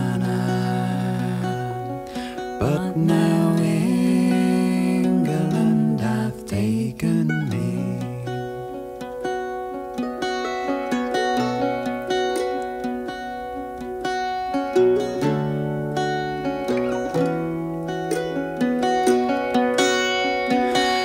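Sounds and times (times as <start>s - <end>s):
plucked string instruments melody: 0.0s - 21.0s.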